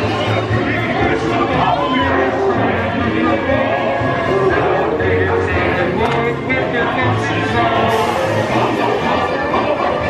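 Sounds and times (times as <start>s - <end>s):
overlapping voices: 0.0s - 10.0s
show soundtrack music: 0.0s - 10.0s.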